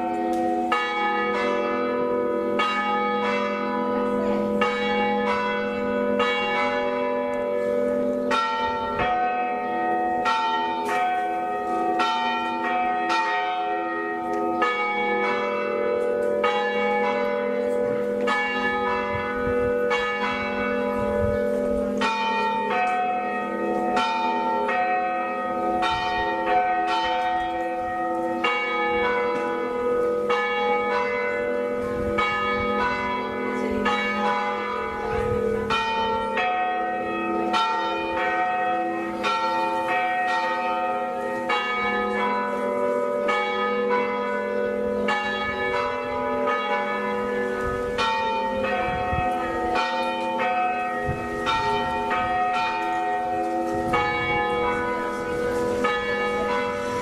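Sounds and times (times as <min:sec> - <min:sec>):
church bells pealing: 0:00.0 - 0:57.0.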